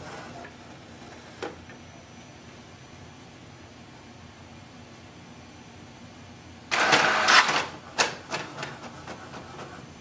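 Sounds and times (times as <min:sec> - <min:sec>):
printer mechanism noise: 0:00.0 - 0:01.9, 0:06.7 - 0:10.0
printer sharp clicks: 0:06.7 - 0:09.4.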